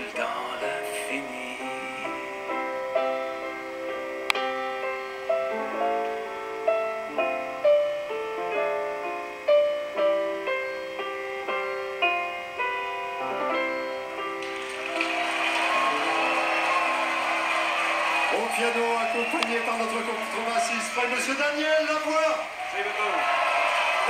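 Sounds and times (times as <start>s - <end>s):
grand piano: 0.0s - 24.0s
audience applause: 14.4s - 24.0s.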